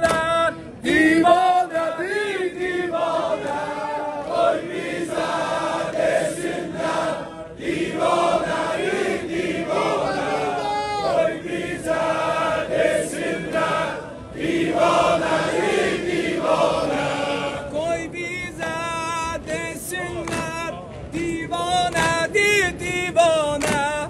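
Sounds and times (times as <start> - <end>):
men chanting in chorus: 0.0 - 24.0.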